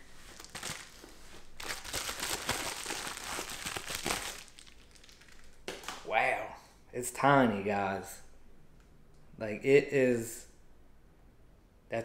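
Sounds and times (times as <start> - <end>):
packaging crinkling: 0.2 - 6.1.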